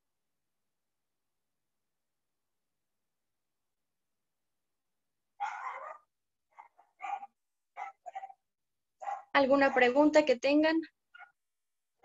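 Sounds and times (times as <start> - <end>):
dog barking faintly: 5.4 - 8.4, 9.0 - 10.0.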